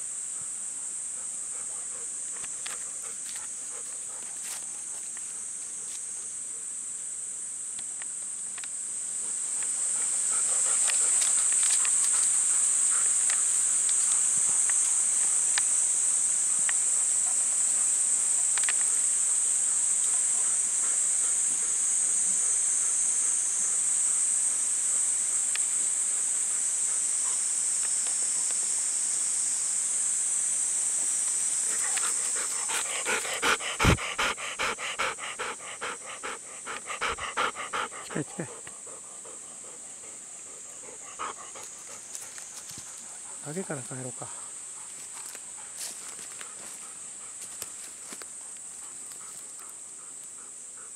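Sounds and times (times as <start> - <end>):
insects droning: 0.0 - 50.9
dog panting: 1.2 - 4.5, 9.8 - 14.6, 31.7 - 43.4, 44.3 - 50.9.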